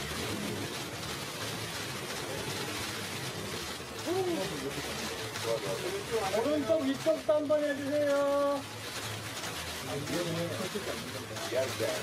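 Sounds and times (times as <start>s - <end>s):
camera shutters clicking: 0.0s - 12.0s.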